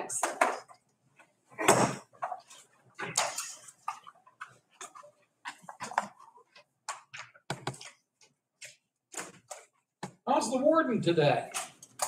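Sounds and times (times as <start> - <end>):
papers rustling: 0.5 - 9.9.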